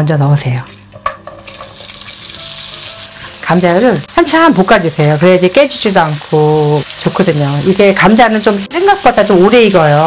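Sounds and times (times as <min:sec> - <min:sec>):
potato sticks clattering into pan: 0:01.0 - 0:02.5
oil sizzling in frying pan: 0:01.0 - 0:10.0.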